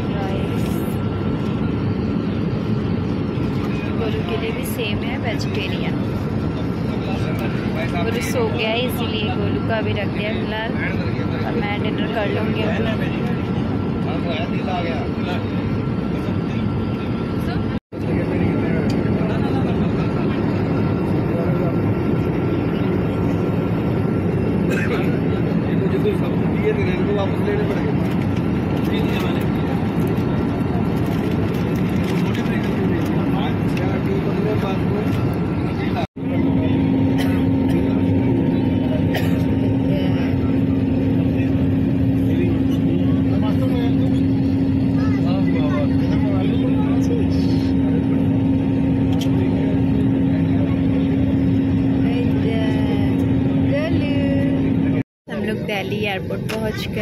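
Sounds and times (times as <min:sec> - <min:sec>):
airliner engines and airflow: 0:00.0 - 0:57.0
passengers murmuring: 0:00.0 - 0:57.0
steady low hum: 0:00.0 - 0:57.0.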